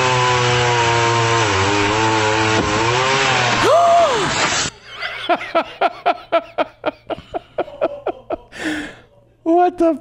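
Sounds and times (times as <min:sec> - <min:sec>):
chainsaw cutting: 0:00.0 - 0:04.8
person exclaiming: 0:03.6 - 0:04.4.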